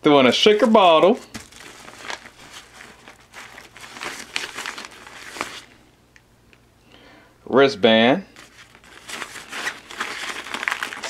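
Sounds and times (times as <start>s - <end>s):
packaging crinkling and rustling: 0.3s - 5.8s, 8.4s - 11.0s.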